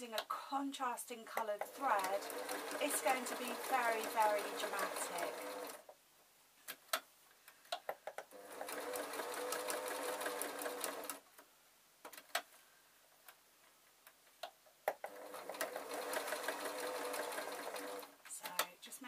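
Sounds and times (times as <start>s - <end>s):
sewing machine stitching: 1.4s - 5.8s, 8.3s - 11.2s, 15.1s - 18.6s.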